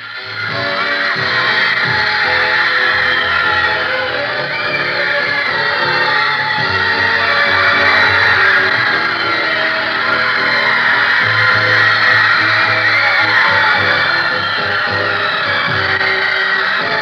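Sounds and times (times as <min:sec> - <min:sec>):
crowd screaming: 0:00.0 - 0:17.0.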